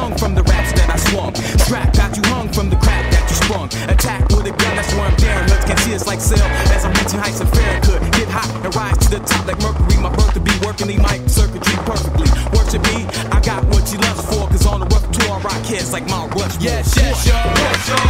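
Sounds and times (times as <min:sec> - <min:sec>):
hip hop beat: 0:00.0 - 0:18.0
skateboard clacks: 0:00.0 - 0:18.0
skateboard wheels rolling on concrete: 0:00.0 - 0:18.0.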